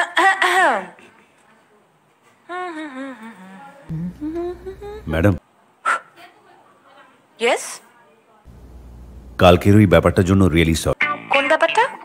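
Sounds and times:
low background noise: 0.0 - 12.0
person humming: 2.5 - 5.4.

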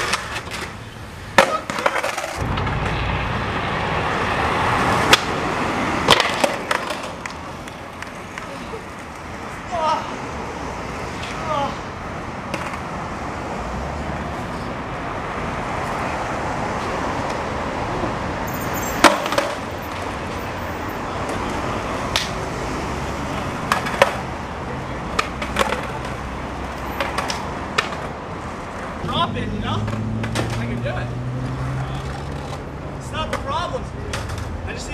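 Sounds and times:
skateboards clacking on concrete: 0.0 - 3.0, 6.0 - 10.0, 12.5 - 12.9, 18.7 - 22.4, 23.6 - 24.4, 25.0 - 29.2, 29.8 - 30.8, 31.5 - 34.9
steady outdoor hiss: 0.0 - 34.9.

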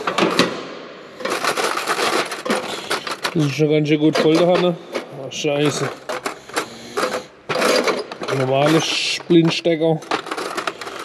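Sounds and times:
metal clips clinking and rattling: 5.6 - 11.0.

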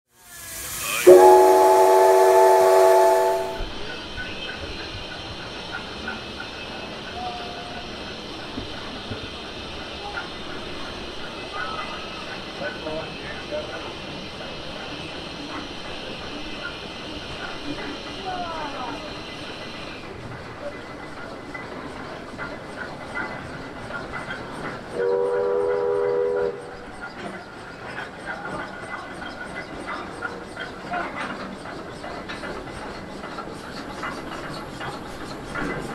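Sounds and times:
steam whistle: 0.2 - 3.8, 25.0 - 26.8
faint steam hiss: 0.2 - 26.9.

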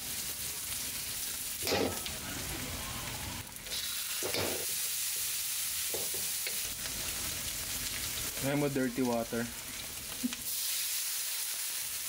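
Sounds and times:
onions sizzling in hot oil: 0.0 - 12.0.

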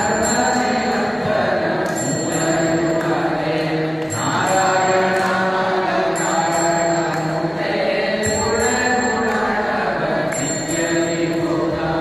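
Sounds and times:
mantra chanting: 0.0 - 12.0.

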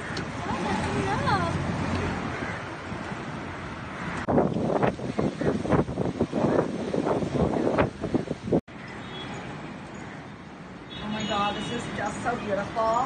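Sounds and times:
wind buffeting microphone: 0.0 - 8.6.

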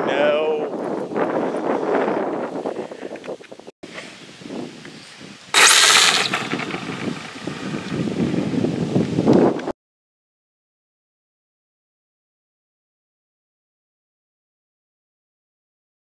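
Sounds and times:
wind on microphone: 0.0 - 9.7.

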